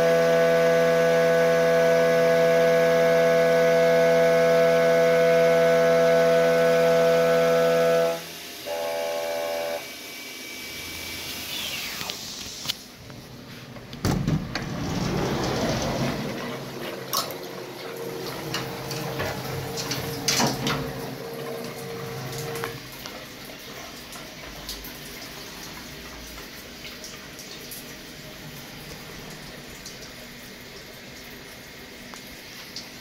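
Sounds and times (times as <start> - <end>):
machine hum: 0.0 - 23.1
liquid running and dripping: 15.3 - 33.0.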